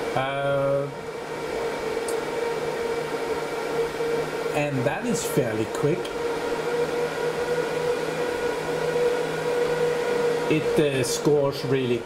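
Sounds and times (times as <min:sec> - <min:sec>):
server cooling fans droning: 0:00.0 - 0:12.0
whining tones: 0:00.0 - 0:12.0.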